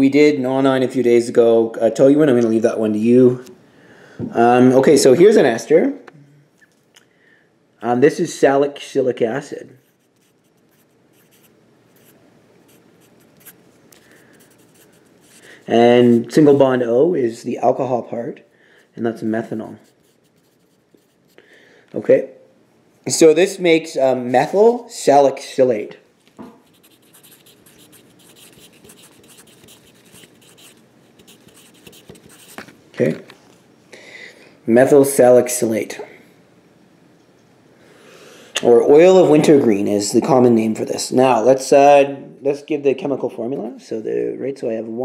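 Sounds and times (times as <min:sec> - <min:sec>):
pencil writing on paper: 0:09.8 - 0:13.6, 0:14.2 - 0:15.5, 0:19.8 - 0:21.4, 0:26.6 - 0:32.6.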